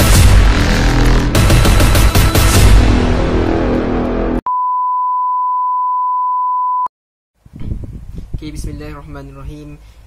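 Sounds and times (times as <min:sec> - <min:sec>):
loud intro music: 0:00.0 - 0:04.4.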